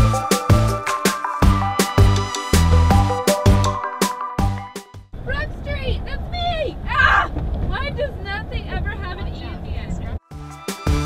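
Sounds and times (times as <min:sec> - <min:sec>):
music: 0:00.0 - 0:05.1, 0:10.2 - 0:11.0
car road and engine rumble: 0:05.1 - 0:10.2.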